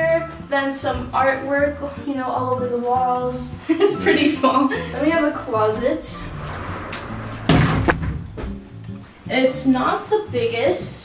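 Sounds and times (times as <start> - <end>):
door slamming bang: 5.8 - 8.7
sharp knock: 6.9 - 8.6.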